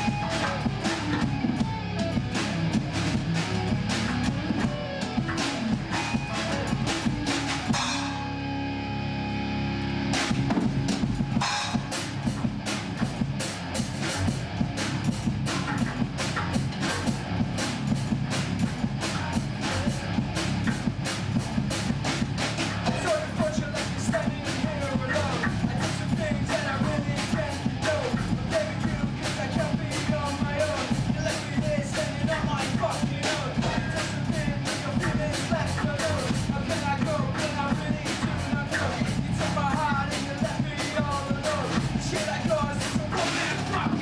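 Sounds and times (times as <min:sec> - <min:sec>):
bass guitar: 0:00.0 - 0:44.0
distorted electric guitars: 0:00.0 - 0:44.0
drum kit playing a beat: 0:00.0 - 0:44.0.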